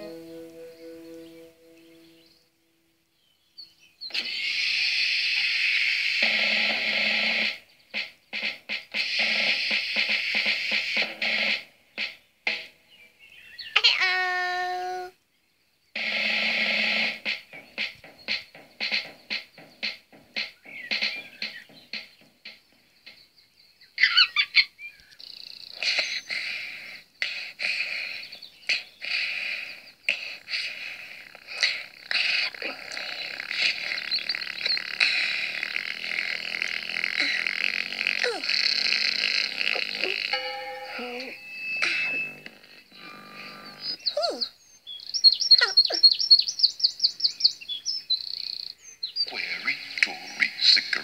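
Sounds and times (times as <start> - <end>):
light music through tv speaker: 0.0 - 2.4, 6.2 - 13.3, 16.0 - 23.4, 32.4 - 44.0, 49.3 - 51.0
bird-like chirping sound effects: 16.0 - 40.3, 40.9 - 51.0.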